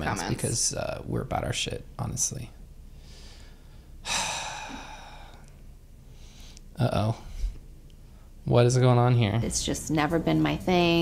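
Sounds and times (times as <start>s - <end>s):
person sighing: 4.0s - 5.5s.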